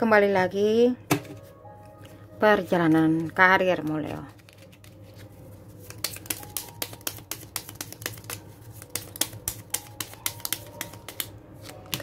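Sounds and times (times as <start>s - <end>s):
cards being shuffled: 3.2s - 12.0s.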